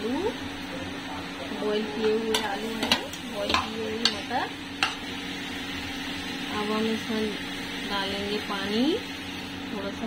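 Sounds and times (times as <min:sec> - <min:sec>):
food sizzling: 0:00.0 - 0:10.0.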